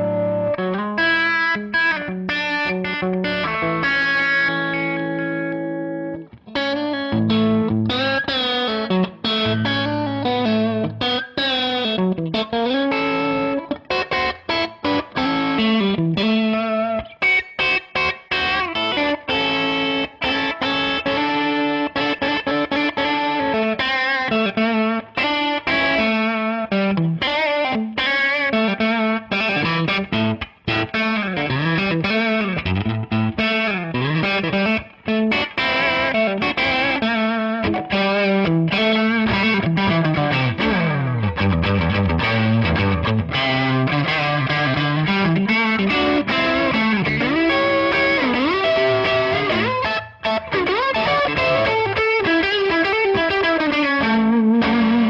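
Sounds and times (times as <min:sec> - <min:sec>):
overdriven electric guitar solo: 0:00.0 - 0:55.0.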